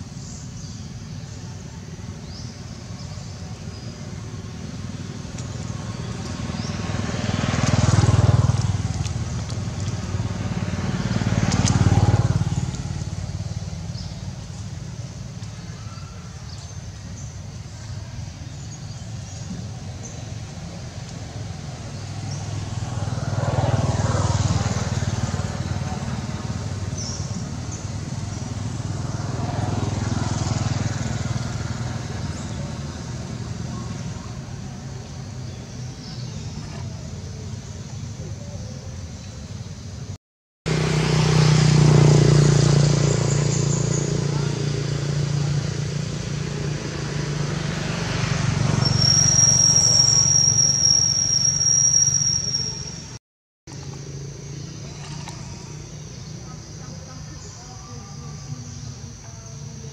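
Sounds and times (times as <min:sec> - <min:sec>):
passing traffic engine hum: 0:00.0 - 0:59.9
high steady whistle: 0:48.8 - 0:53.2.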